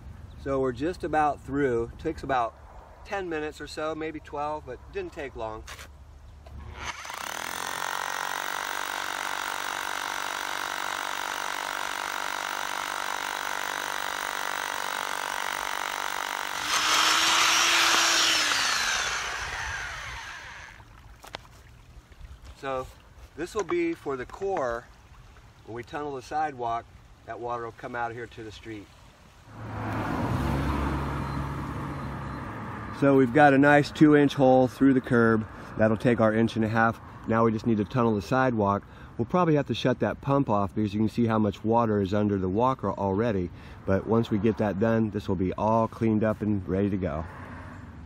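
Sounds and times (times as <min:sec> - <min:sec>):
hammer drill boring concrete: 0:06.6 - 0:20.8
vehicle engine hum: 0:29.5 - 0:33.0.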